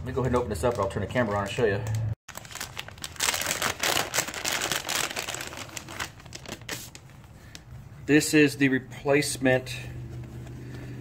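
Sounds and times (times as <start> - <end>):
plastic bag crinkling: 2.3 - 7.6.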